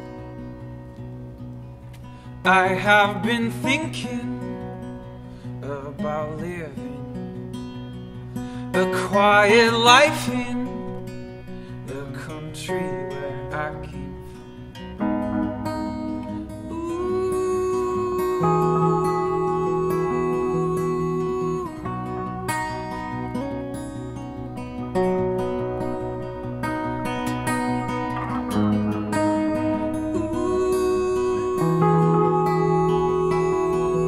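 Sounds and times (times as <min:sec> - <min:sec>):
acoustic guitar strumming: 0:00.0 - 0:34.0
long held notes sliding up: 0:15.0 - 0:34.0.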